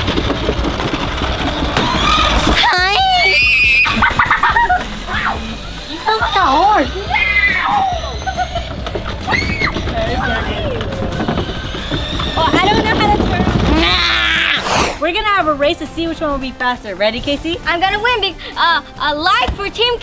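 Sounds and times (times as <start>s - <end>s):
girls laughing and shrieking: 1.8s - 14.7s
background music: 2.0s - 20.0s.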